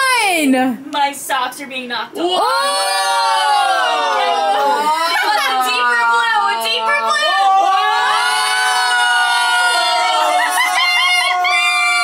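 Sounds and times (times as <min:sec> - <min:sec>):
people exclaiming whoa: 0:02.2 - 0:12.0.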